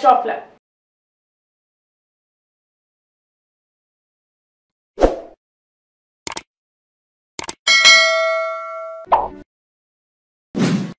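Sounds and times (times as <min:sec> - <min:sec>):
quick double click: 0:06.3 - 0:06.5, 0:07.4 - 0:07.6
bell chime ringing: 0:07.7 - 0:09.1.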